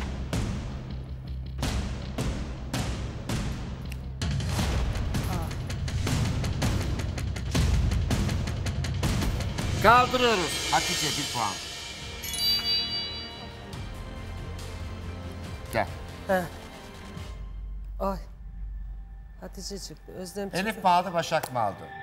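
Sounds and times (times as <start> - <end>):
suspense music with heavy percussion: 0.0 - 22.0.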